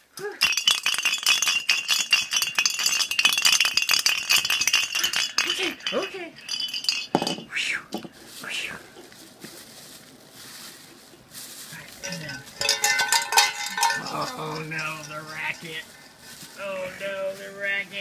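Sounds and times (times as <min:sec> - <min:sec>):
jingle bells shaken: 0:00.4 - 0:07.5, 0:11.7 - 0:18.0
person's low voice: 0:13.8 - 0:15.1.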